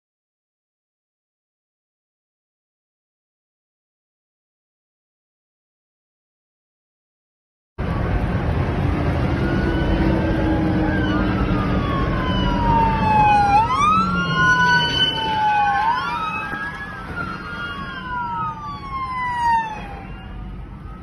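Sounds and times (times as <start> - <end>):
car road rumble: 7.8 - 21.0
emergency sirens wailing: 7.8 - 21.0.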